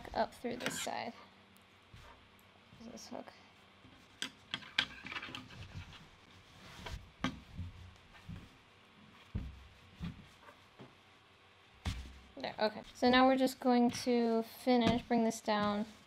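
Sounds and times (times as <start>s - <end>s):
fabric rustling: 4.9s - 16.0s.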